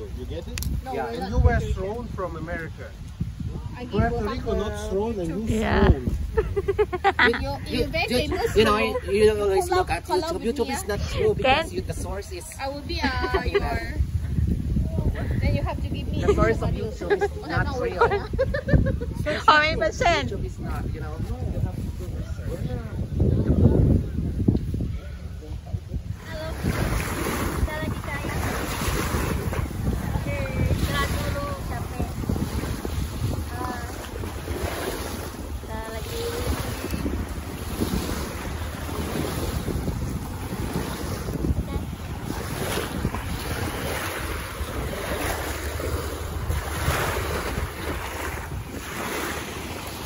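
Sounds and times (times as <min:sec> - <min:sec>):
wind buffeting microphone: 0:00.0 - 0:50.0
small waves washing on sand: 0:26.1 - 0:50.0.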